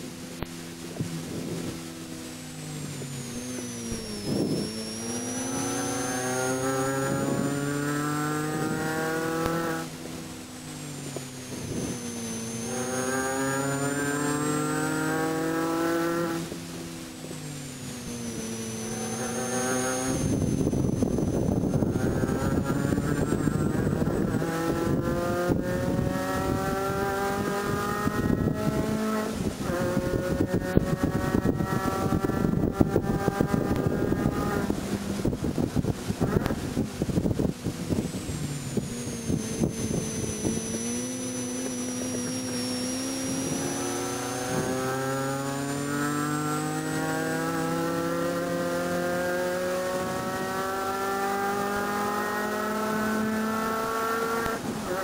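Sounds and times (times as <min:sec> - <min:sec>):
car engine running hard: 0:00.0 - 0:55.0.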